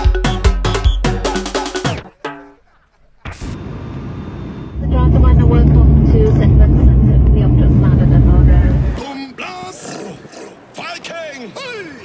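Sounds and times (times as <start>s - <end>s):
music: 0.0s - 2.6s
loud steady low rumble: 3.5s - 9.0s
indistinct voices: 4.8s - 10.3s.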